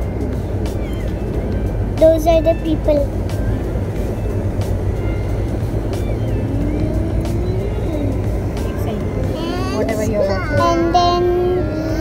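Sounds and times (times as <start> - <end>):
car road rumble: 0.0 - 12.0.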